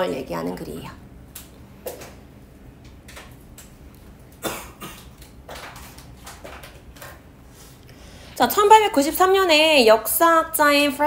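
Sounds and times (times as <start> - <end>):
person coughing: 4.4 - 5.1.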